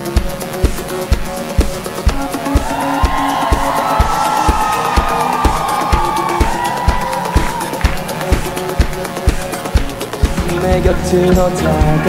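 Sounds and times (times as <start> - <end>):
electronic pop band playing: 0.0 - 12.0
crowd cheering: 1.8 - 12.0.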